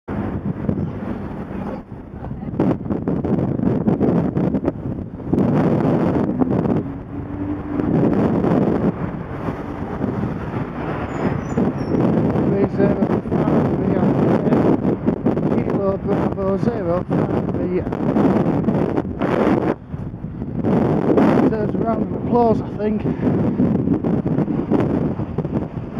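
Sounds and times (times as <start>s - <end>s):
wind rumble on microphone: 0.0s - 25.9s
cars passing close by: 3.3s - 15.5s.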